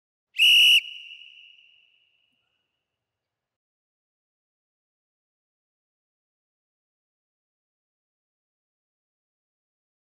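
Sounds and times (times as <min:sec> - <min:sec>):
whistle blast: 0:00.4 - 0:02.1.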